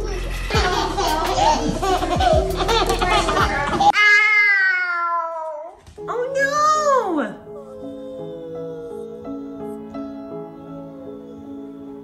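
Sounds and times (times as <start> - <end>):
toddler crying: 3.8 - 5.8.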